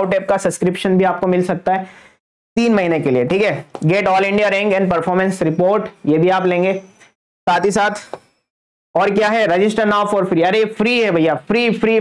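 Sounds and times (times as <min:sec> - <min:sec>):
man lecturing: 0:00.0 - 0:02.0, 0:02.6 - 0:06.9, 0:07.5 - 0:08.2, 0:09.0 - 0:12.0.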